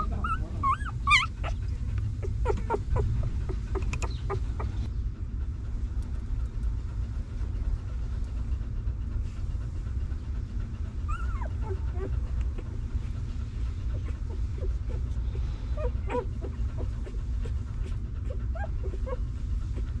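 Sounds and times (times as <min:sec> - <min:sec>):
puppies squeaking and whimpering: 0:00.0 - 0:04.9, 0:11.0 - 0:12.9, 0:13.8 - 0:20.0
steady low rumble: 0:00.0 - 0:20.0.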